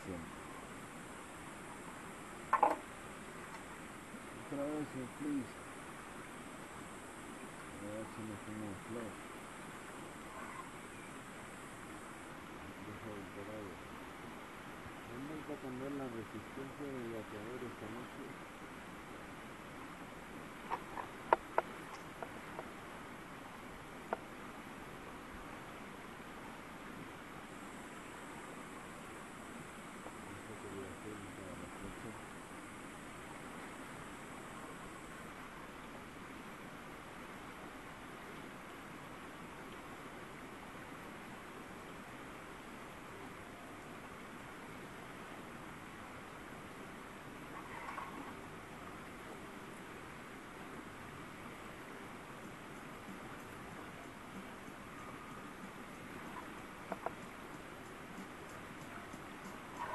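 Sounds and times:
faint outdoor hiss: 0.0 - 59.9.

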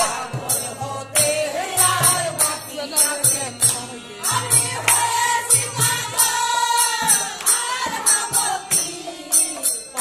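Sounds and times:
women's chorus singing: 0.0 - 10.0.

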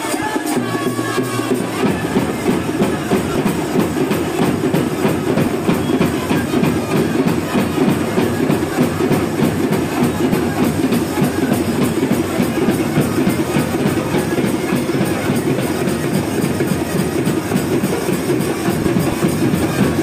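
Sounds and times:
fast rhythmic drumming: 0.0 - 20.0.

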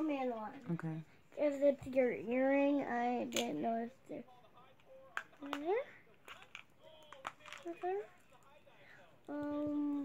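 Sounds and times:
plastic pieces clicking: 5.2 - 7.9.

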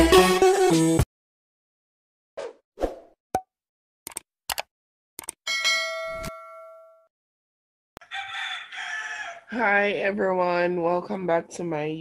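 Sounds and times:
short clicks: 4.1 - 5.4
bell-like ding: 5.5 - 7.1
rooster crowing: 8.0 - 9.6.

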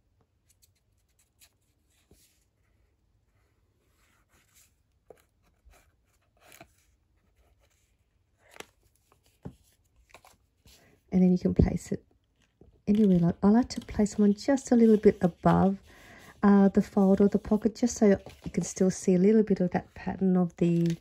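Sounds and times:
card stock rustling and tapping: 8.4 - 10.8, 11.6 - 19.0, 20.7 - 21.0.

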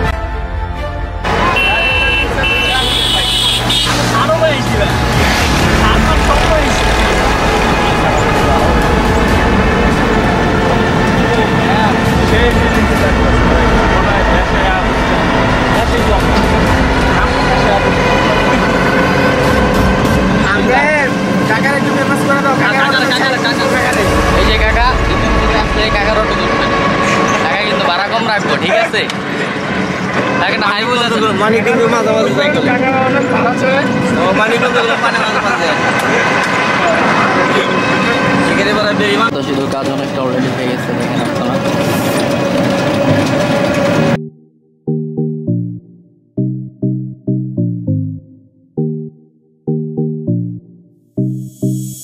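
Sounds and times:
road and vehicle rumble: 0.1 - 44.2
people's voices: 1.2 - 44.1
auto-rickshaw motor running: 1.2 - 44.2
people talking: 1.3 - 5.1, 5.7 - 9.5, 10.6 - 15.0, 15.7 - 18.8, 20.4 - 29.4, 30.4 - 42.2.

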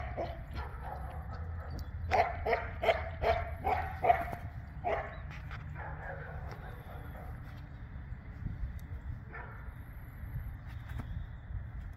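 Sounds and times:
dog barking: 0.0 - 7.4, 9.3 - 9.6.

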